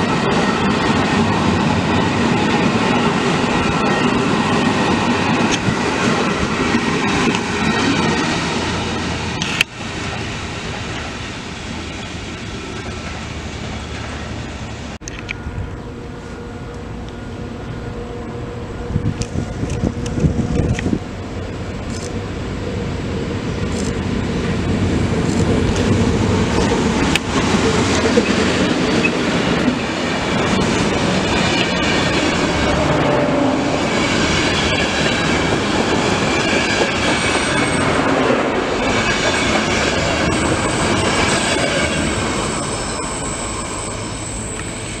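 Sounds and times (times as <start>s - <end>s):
train passing at speed: 0.0s - 45.0s
wheels running on rails: 0.0s - 45.0s
high-pitched squealing: 25.2s - 45.0s.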